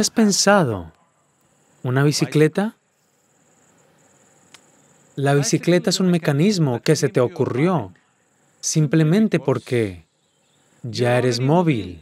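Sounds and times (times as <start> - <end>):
high-pitched cricket trill: 0.0 - 12.0.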